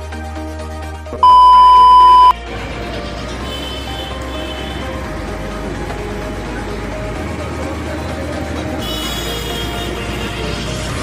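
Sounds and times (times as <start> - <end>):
electronic background music: 0.0 - 11.0
high-pitched electronic beep: 1.2 - 2.4
noisy background: 1.2 - 11.0.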